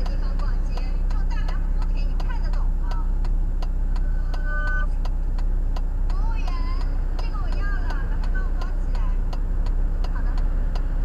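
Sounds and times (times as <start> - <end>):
idling engine hum: 0.0 - 11.0
turn signal ticking: 0.0 - 11.0.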